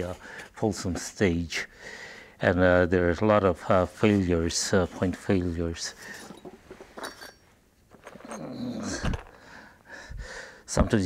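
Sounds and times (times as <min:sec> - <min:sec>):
light clinks: 0:06.0 - 0:08.7
man groaning with effort: 0:08.3 - 0:09.2.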